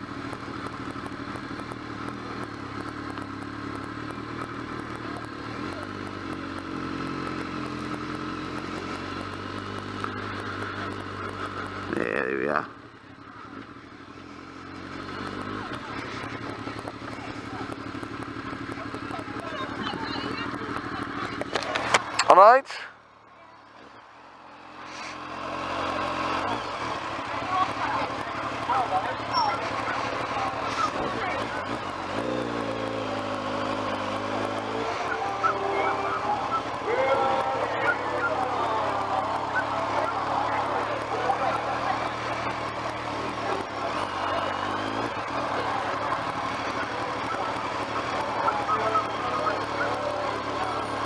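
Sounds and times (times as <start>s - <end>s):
crowd voices: 0.0s - 51.0s
motorcycle engine running slowly: 0.0s - 51.0s.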